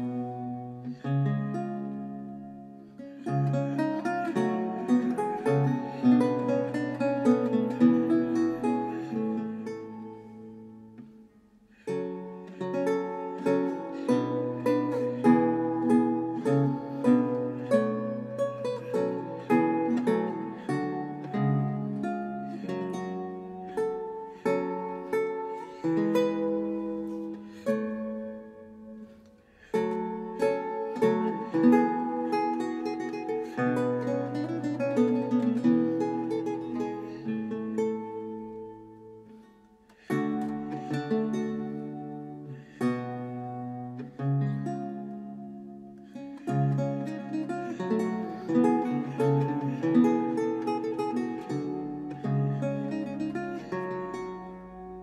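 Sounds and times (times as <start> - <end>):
solo lute playing: 0.0 - 55.0.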